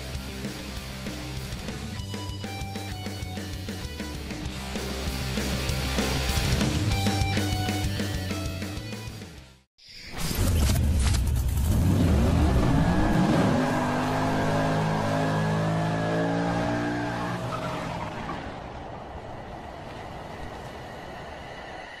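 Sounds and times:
car engine revving: 11.5 - 18.9.

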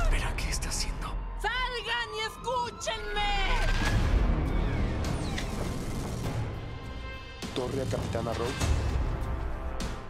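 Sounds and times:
music: 2.8 - 10.0.

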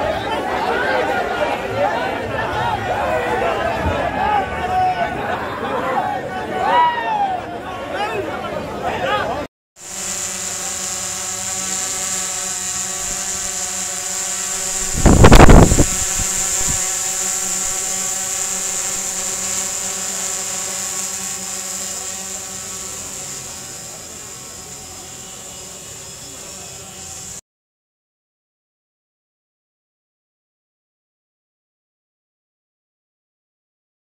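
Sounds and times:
loud burst of noise: 9.8 - 27.4
motor hum with high whine: 9.8 - 27.4.

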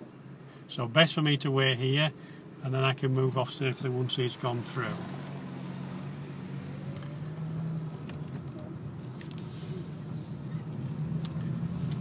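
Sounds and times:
car engine running: 2.7 - 12.0.

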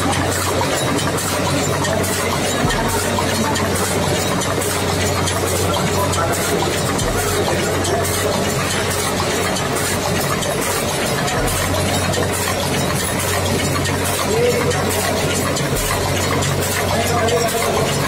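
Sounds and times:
factory machinery running: 0.0 - 18.0.

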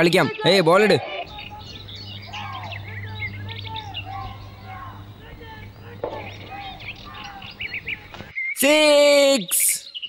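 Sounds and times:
birds chirping: 0.0 - 10.0
steady low hum: 1.3 - 8.3.

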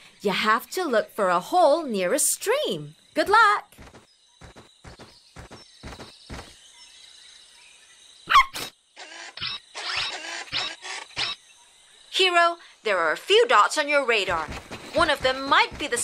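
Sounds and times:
small dog yip: 8.3 - 8.7
light pattering steps: 14.2 - 16.0.

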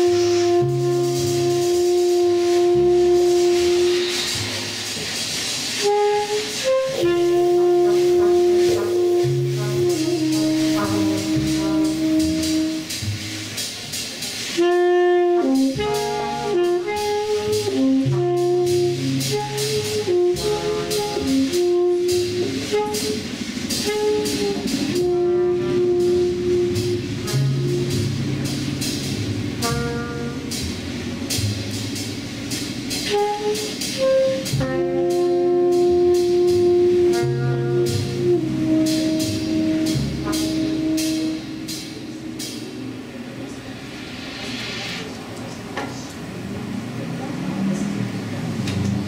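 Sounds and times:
tenor saxophone: 0.0 - 4.8, 5.7 - 13.5, 14.5 - 30.9, 33.0 - 42.6
horn holding long note: 0.0 - 13.3, 14.5 - 30.8, 33.1 - 43.1
cymbal crashes: 0.0 - 14.7, 18.4 - 45.2
trumpet: 0.0 - 43.1
double bass: 0.0 - 44.8
drums: 0.0 - 49.0.

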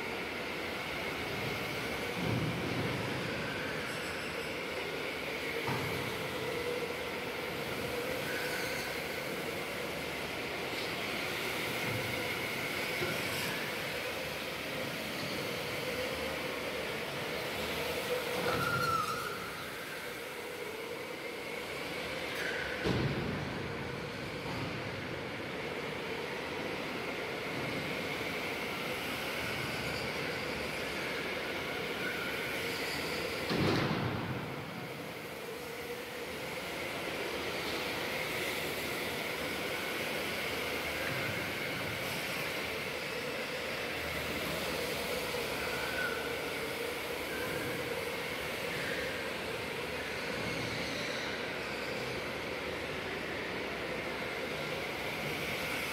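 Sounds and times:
electric go-karts whining: 0.0 - 55.9.

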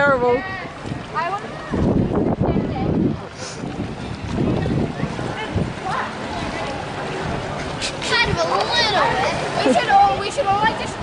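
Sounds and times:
water splashing in pool: 0.0 - 11.0
wind rumbling on microphone: 0.0 - 11.0.

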